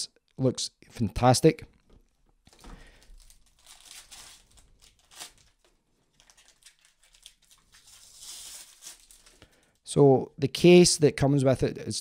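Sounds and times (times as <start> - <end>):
plastic bag crinkling: 2.5 - 9.9.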